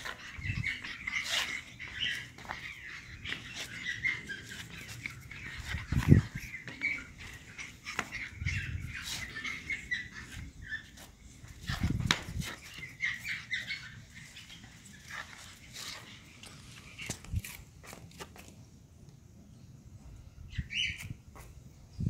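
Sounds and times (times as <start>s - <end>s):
puppies whimpering and yipping: 0.0s - 17.1s.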